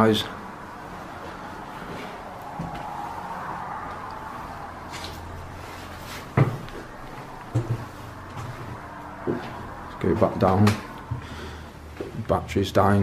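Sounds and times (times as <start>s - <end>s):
rustle of movement and handling: 4.9s - 9.8s.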